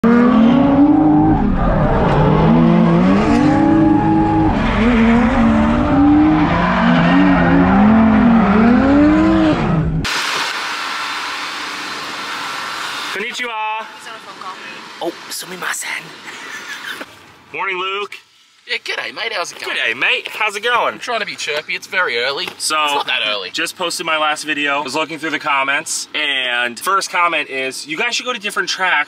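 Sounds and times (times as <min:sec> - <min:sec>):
car engine revving: 0:00.0 - 0:13.2.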